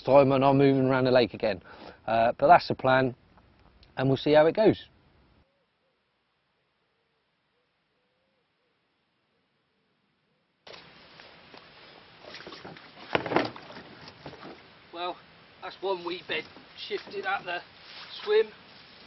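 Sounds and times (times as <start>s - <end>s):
knocks in a boat: 13.1s - 14.6s
rustling weed: 15.7s - 19.0s.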